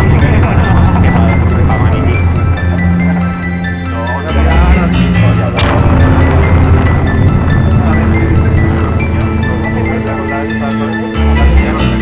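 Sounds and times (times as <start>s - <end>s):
loud music with ticking beat: 0.0s - 12.0s.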